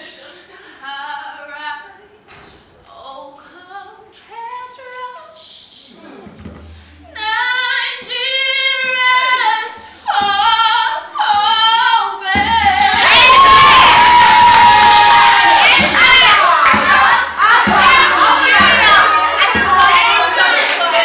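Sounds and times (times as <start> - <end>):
woman singing unaccompanied: 0.8 - 5.4, 7.1 - 14.0, 15.6 - 21.0
women cheering and shouting: 12.7 - 21.0.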